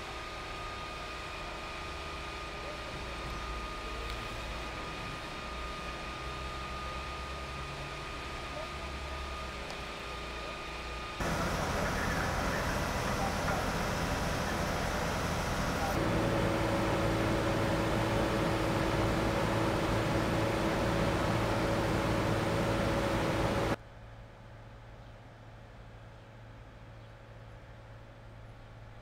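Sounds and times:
street ambience: 0:08.5 - 0:23.8
fire engine idling: 0:11.2 - 0:23.8.

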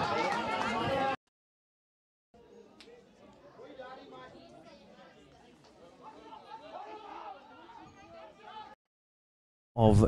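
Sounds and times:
faint chatter of voices: 0:02.4 - 0:08.8.

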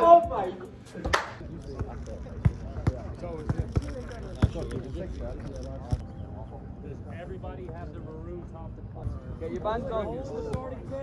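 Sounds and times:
players chattering: 0:00.0 - 0:11.0
soccer ball kick thuds: 0:01.8 - 0:04.7.

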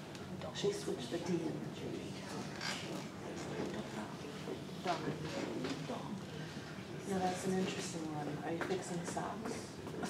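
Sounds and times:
indistinct talking in a room: 0:00.0 - 0:10.0.

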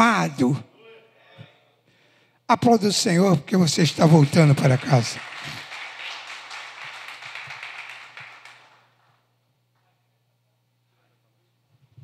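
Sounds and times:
congregation applauding: 0:03.7 - 0:09.2.

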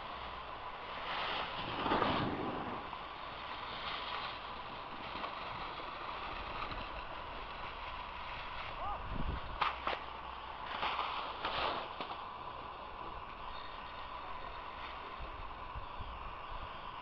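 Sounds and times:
skis sliding on snow: 0:00.0 - 0:17.0
wind on microphone: 0:08.8 - 0:09.6.

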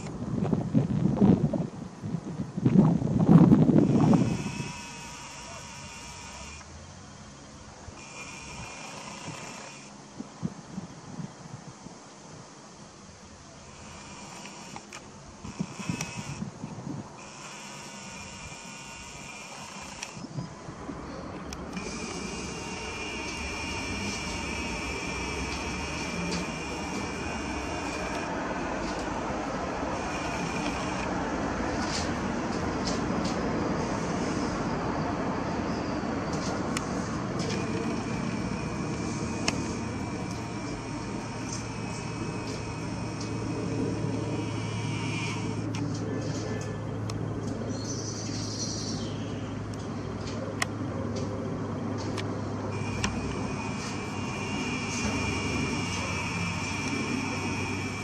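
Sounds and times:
thin high whine: 0:03.7 - 0:06.7, 0:21.7 - 0:46.8, 0:52.7 - 0:58.0
sharp camera clicks: 0:03.8 - 0:06.7, 0:08.0 - 0:10.0, 0:13.7 - 0:16.6, 0:17.2 - 0:20.4, 0:21.4 - 0:33.4, 0:36.3 - 0:46.1, 0:52.0 - 0:58.0
propeller airplane drone: 0:13.5 - 0:48.0, 0:49.0 - 0:58.0.

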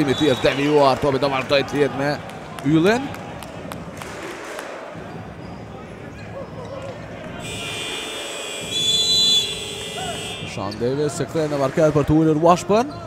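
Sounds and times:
crowd hubbub: 0:01.3 - 0:11.1
steady buzzer tone: 0:07.4 - 0:10.5.

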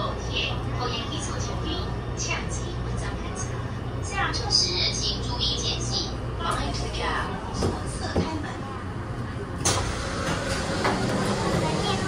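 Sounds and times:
stopped train rumble: 0:00.0 - 0:12.0
train doors sliding open: 0:09.6 - 0:12.0.

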